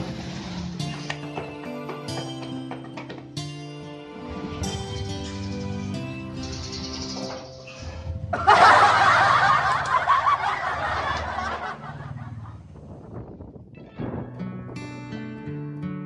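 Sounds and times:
background music: 0.0 - 12.7
canned audience laughter: 8.3 - 12.6.

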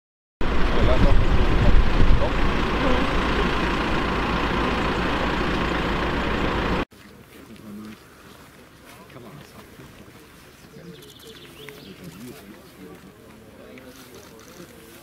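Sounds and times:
diesel engine running: 0.4 - 6.9
quiet outdoor ambience: 2.2 - 15.0.

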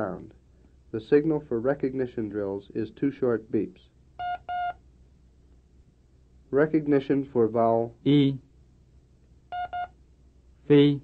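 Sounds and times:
short electronic beeps: 4.2 - 4.8, 9.5 - 10.0.

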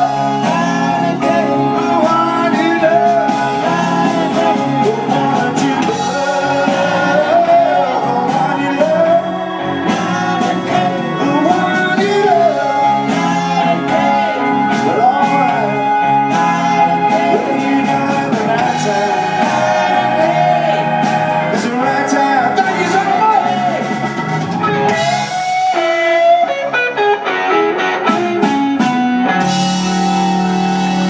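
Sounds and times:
blues band playing: 0.0 - 31.0
person singing lead line: 0.0 - 31.0.

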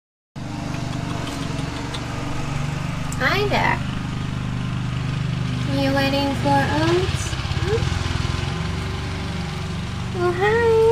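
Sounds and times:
lawn mower engine running: 0.4 - 10.9.

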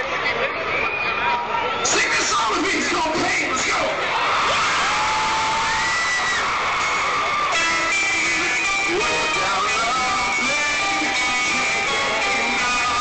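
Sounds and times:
crowd cheering and whooping: 4.0 - 13.0
electric guitar playing: 6.6 - 13.0.

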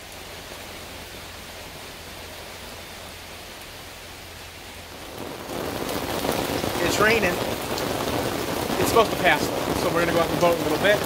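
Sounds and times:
rain on a wooden deck: 0.0 - 11.0.

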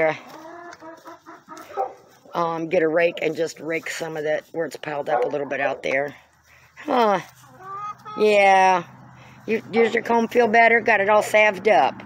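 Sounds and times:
hens clucking: 0.0 - 11.6.

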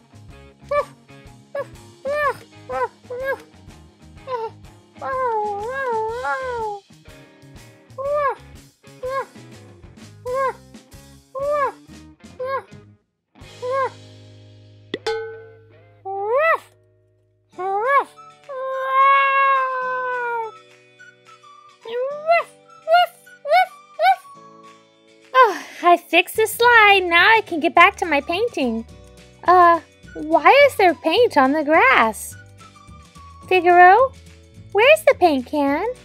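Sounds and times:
light background music: 0.0 - 16.7, 17.5 - 36.0
person imitating cat meows: 4.3 - 6.8, 17.6 - 20.5.

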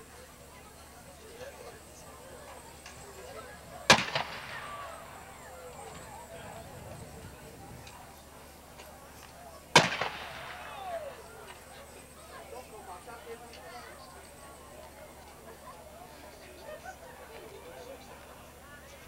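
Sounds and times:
loud gunshots with echo: 3.9 - 5.1, 9.8 - 10.8.

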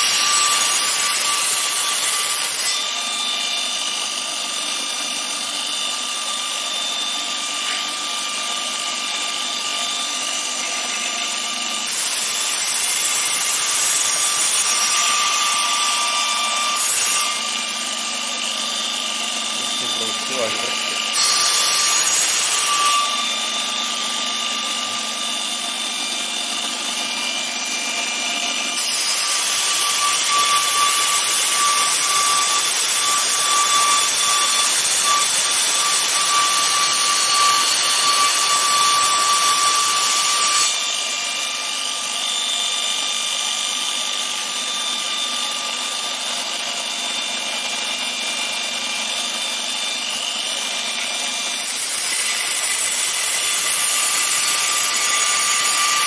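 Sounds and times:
belt grinder grinding metal: 0.0 - 27.9, 28.6 - 56.0
belt grinder whine: 0.0 - 56.0.

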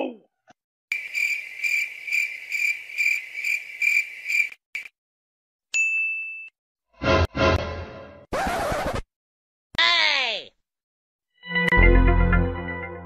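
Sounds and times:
crickets chirping: 0.9 - 4.9.

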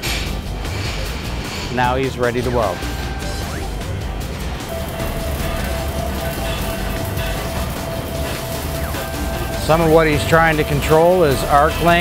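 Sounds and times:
background music: 0.0 - 12.0
welding arc crackle and hiss: 0.0 - 12.0.

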